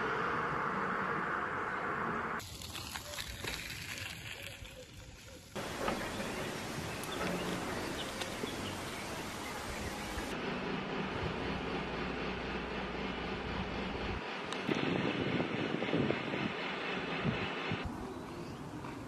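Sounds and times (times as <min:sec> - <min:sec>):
steady rumble and hiss: 0:05.6 - 0:18.7.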